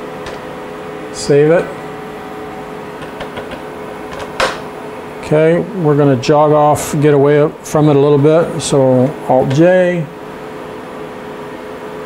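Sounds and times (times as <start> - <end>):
steady mechanical hum: 0.0 - 12.0.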